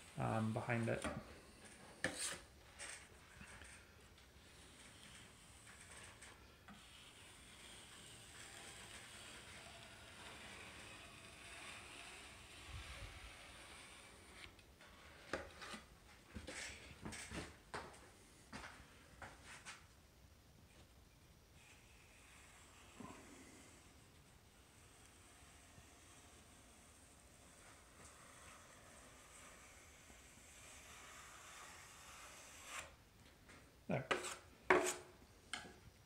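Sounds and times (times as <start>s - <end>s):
drywall knife scraping metal: 0.0s - 17.2s, 21.6s - 33.0s, 34.0s - 35.1s.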